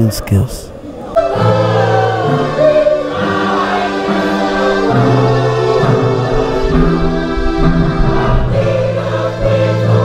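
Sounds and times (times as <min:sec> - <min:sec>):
electronic keyboard playing hymn chords: 0:01.2 - 0:10.0.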